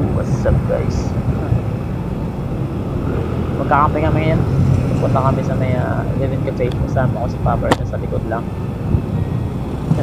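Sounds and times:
motorcycle road noise: 0:00.0 - 0:10.0
wind on microphone: 0:00.0 - 0:10.0.

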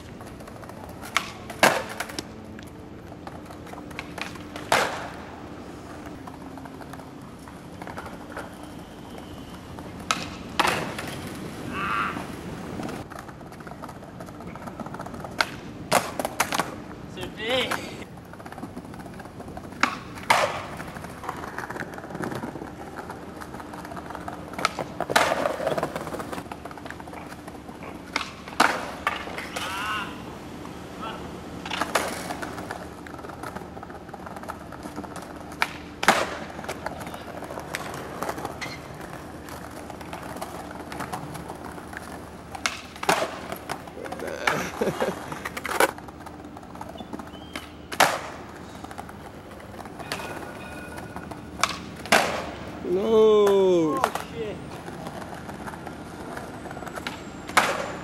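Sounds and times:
skateboard slaps: 0:00.0 - 0:58.0
skateboard wheels rolling on tile: 0:00.0 - 0:58.0
skateboard landing crack: 0:00.2 - 0:02.3, 0:03.2 - 0:05.4, 0:09.8 - 0:16.8, 0:17.7 - 0:29.8, 0:31.6 - 0:52.8, 0:54.9 - 0:58.0.

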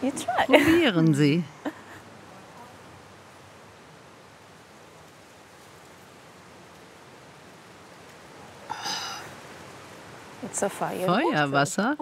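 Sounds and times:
outdoor ambience hiss: 0:00.0 - 0:12.0.

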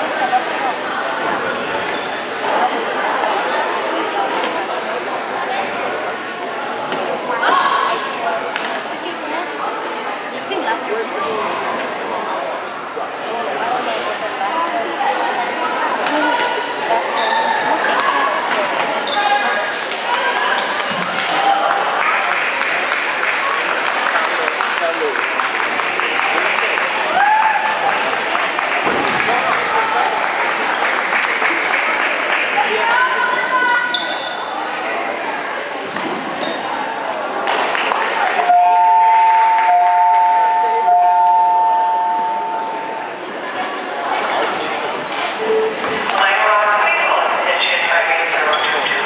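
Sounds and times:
spectators chattering: 0:00.0 - 0:49.0.

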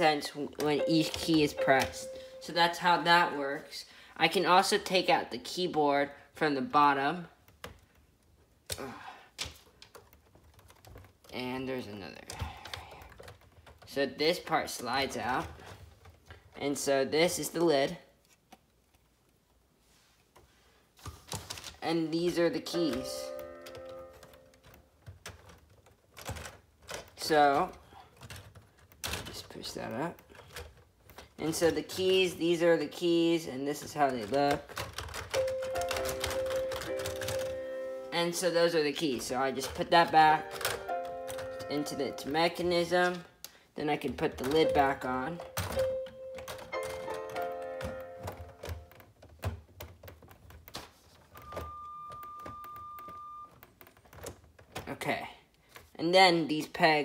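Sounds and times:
overlapping musical notes: 0:00.8 - 0:02.8, 0:40.3 - 0:42.3, 0:45.7 - 0:48.6
plastic parts clicking: 0:24.2 - 0:32.4, 0:39.2 - 0:41.9, 0:44.2 - 0:54.9.

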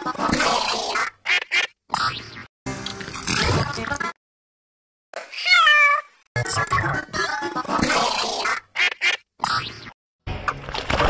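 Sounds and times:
squawking cartoon sound effects: 0:00.4 - 0:02.5, 0:08.1 - 0:10.0.

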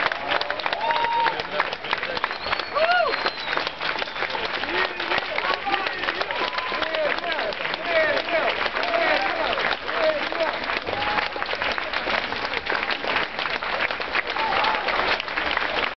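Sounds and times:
crowd clapping: 0:00.0 - 0:15.9
cheering shouts and whoops: 0:00.1 - 0:01.5, 0:02.5 - 0:11.5, 0:14.2 - 0:15.2.

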